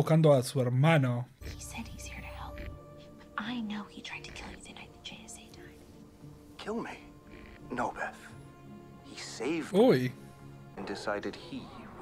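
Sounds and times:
whispered dialogue: 0:01.3 - 0:12.0.

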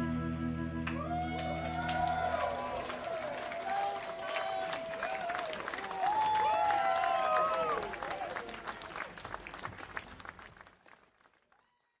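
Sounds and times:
audience applauding: 0:00.8 - 0:12.0.

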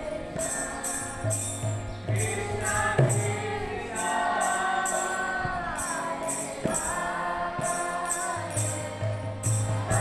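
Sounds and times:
group singing a chant: 0:00.0 - 0:10.0
jingling hand percussion: 0:00.0 - 0:10.0.

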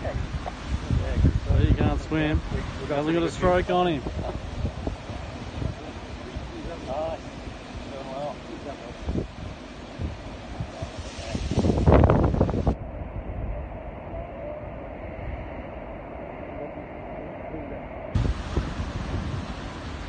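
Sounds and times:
wind buffeting microphone: 0:00.0 - 0:07.9, 0:08.9 - 0:16.5, 0:18.1 - 0:20.0.

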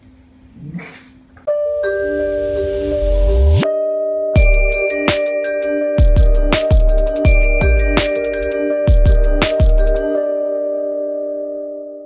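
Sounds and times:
electronic jingle with chiming notes: 0:01.5 - 0:10.8.

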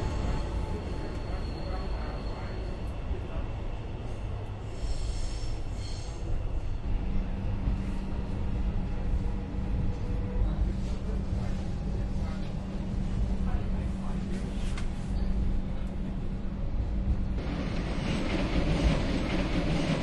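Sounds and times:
train rumbling on rails: 0:00.0 - 0:20.0.

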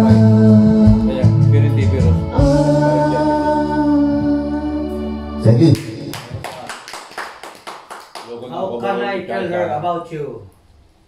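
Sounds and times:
hand clapping: 0:05.8 - 0:08.9.

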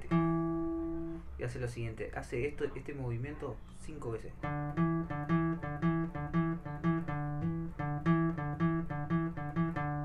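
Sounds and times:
classical guitar single-note riff: 0:00.0 - 0:01.3, 0:04.4 - 0:10.0.

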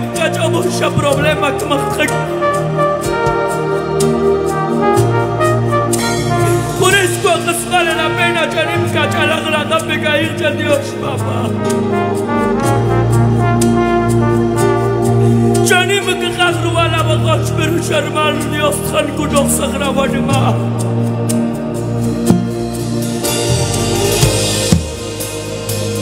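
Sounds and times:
brass chord: 0:00.0 - 0:26.0
deep bass: 0:00.0 - 0:26.0
drum kit strikes: 0:03.0 - 0:03.7, 0:22.2 - 0:26.0
cymbal beat: 0:20.6 - 0:26.0.

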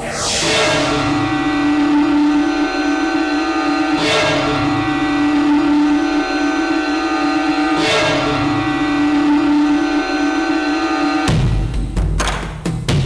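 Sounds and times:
rising noisy swell: 0:00.0 - 0:11.3
synthesizer drone: 0:00.0 - 0:11.3.

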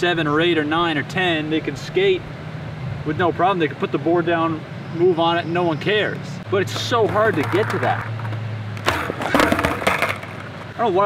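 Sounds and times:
skateboard clattering on asphalt: 0:06.7 - 0:10.8.

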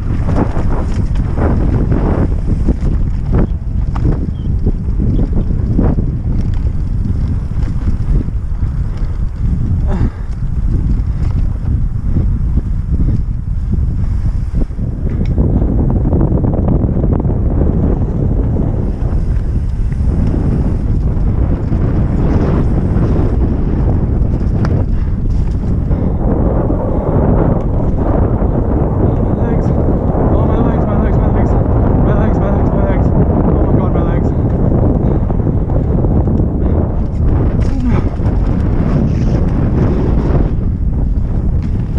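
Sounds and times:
bike clattering: 0:00.0 - 0:15.8, 0:17.5 - 0:26.4, 0:34.3 - 0:41.9
tyre noise on dirt: 0:00.0 - 0:16.0, 0:16.9 - 0:30.3, 0:34.5 - 0:41.9
wind rushing over microphone: 0:00.0 - 0:41.9.

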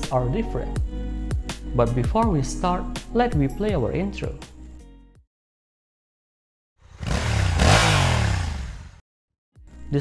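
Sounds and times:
motorcycle engine revving: 0:06.8 - 0:09.0.

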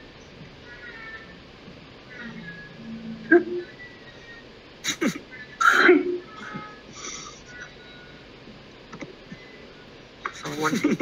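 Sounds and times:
cat meowing faintly: 0:00.6 - 0:01.4.

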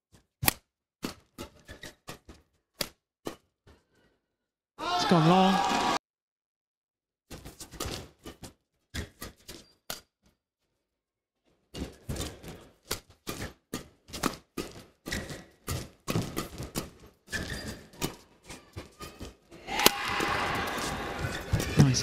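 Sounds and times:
rackets hitting shuttlecock: 0:12.8 - 0:21.8.

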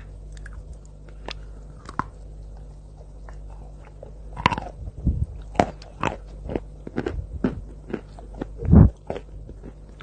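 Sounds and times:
chalk crunching when chewed: 0:00.3 - 0:04.8, 0:05.4 - 0:10.0.

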